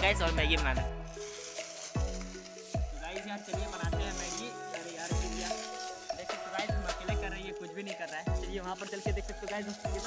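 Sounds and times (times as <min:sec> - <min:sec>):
hip hop beat: 0:00.0 - 0:10.0.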